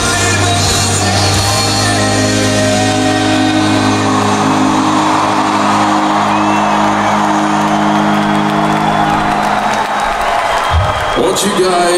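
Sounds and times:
crowd cheering and whooping: 1.3s - 11.9s.

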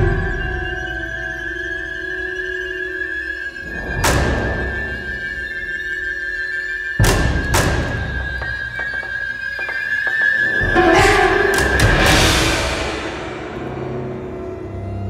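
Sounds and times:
percussion hits: 7.0s - 14.4s
music with long held notes: 10.1s - 15.0s.

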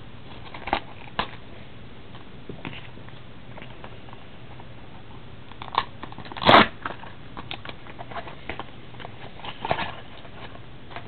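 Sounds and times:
foil pack crackling and tearing: 5.6s - 7.6s.

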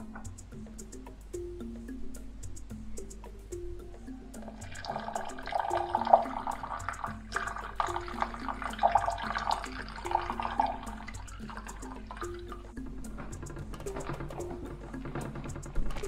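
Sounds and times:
background music: 0.0s - 16.0s
water pouring into a bowl: 4.7s - 12.6s.

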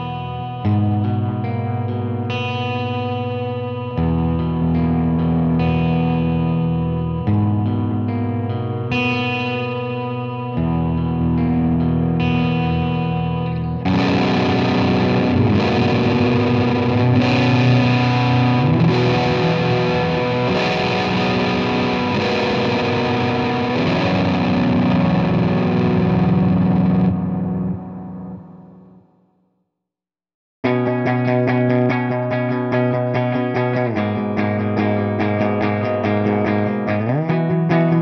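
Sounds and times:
electric guitar chords: 0.0s - 29.2s, 30.6s - 38.0s.

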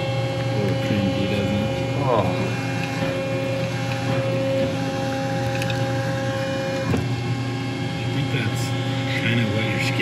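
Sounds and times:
hydraulic press humming: 0.0s - 10.0s.

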